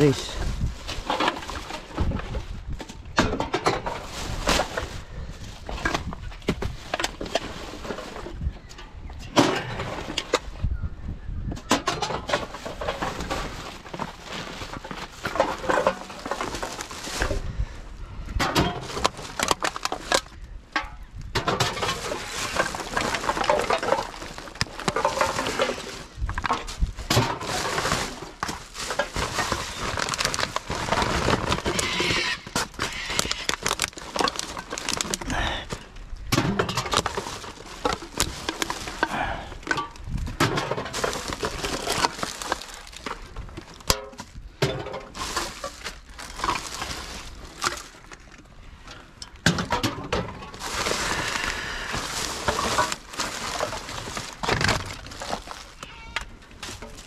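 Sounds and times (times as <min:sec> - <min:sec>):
plastic bags rustling: 0:00.0 - 0:08.5, 0:11.9 - 0:18.0, 0:18.6 - 0:20.6, 0:21.2 - 0:57.0.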